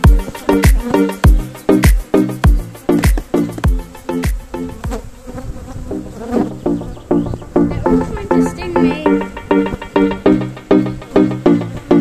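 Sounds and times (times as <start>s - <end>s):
electronic music with steady beat: 0.0s - 5.0s, 7.7s - 12.0s
honeybees buzzing: 0.0s - 12.0s.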